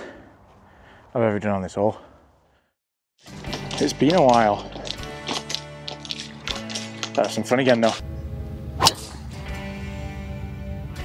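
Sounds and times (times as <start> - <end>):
background music: 3.2 - 11.0
golf club striking ball: 8.8 - 9.4.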